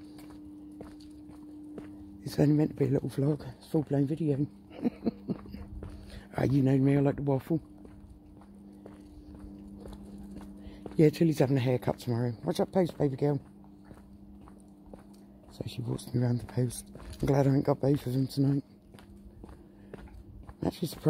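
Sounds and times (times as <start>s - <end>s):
faint footsteps on pavement: 0.0s - 21.0s
steady low hum: 0.0s - 21.0s.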